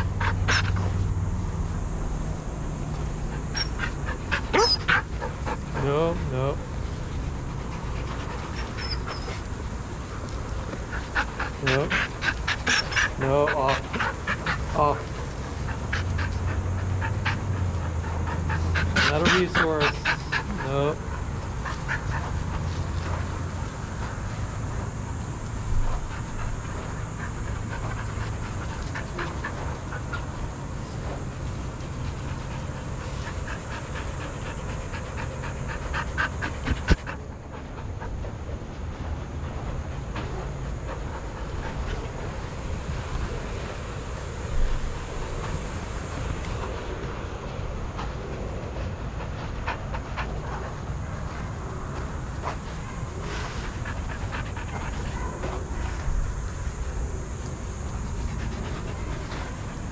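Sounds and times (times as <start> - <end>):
dogs panting: 0.0 - 59.9
dog whining: 3.2 - 5.9, 8.5 - 9.5, 11.6 - 15.0.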